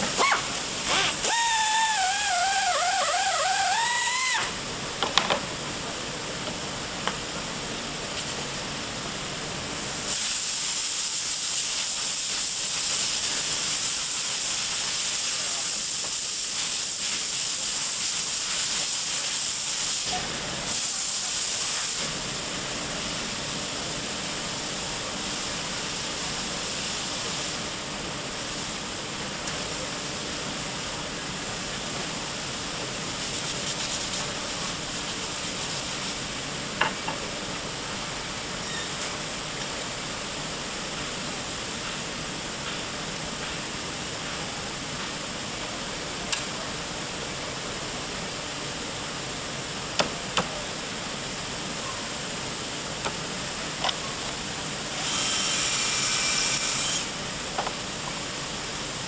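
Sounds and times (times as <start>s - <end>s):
workshop hiss: 0.0s - 59.0s.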